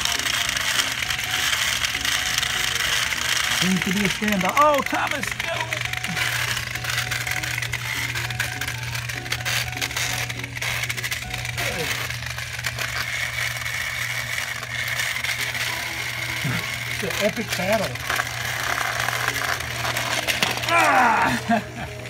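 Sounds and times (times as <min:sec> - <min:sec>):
plastic gears rattling: 0:00.0 - 0:22.0
toy motors whining: 0:00.0 - 0:22.0.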